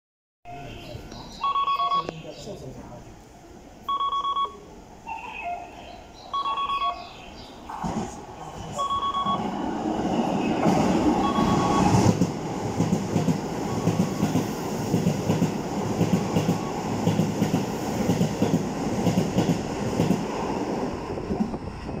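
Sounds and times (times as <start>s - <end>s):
short electronic beeps: 0.5s - 2.3s, 3.9s - 7.2s, 8.7s - 9.5s, 11.2s - 12.1s.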